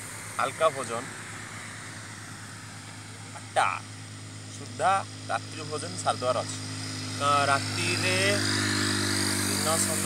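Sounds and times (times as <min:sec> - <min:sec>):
constant low hum: 0:00.0 - 0:10.0.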